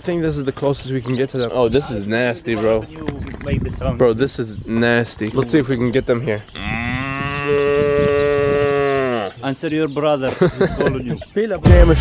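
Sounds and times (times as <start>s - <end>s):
man imitating cow moo: 6.6s - 9.4s.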